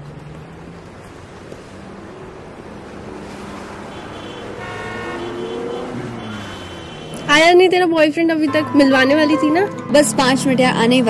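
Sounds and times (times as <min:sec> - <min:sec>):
passing vehicle engine: 0:00.0 - 0:11.0
car horn: 0:03.8 - 0:07.5, 0:08.5 - 0:10.4.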